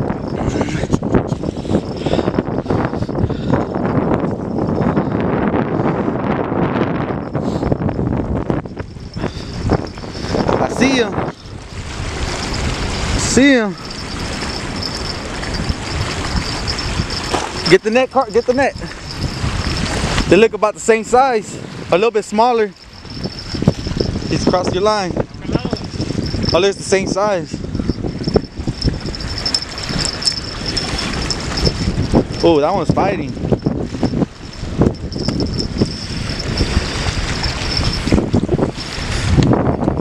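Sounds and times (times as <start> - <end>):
choppy lake water: 0.0 - 40.0
wind buffeting microphone: 0.0 - 40.0.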